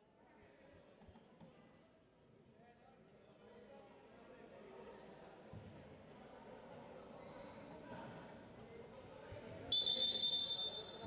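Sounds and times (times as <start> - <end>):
referee whistle blast: 9.7 - 11.0.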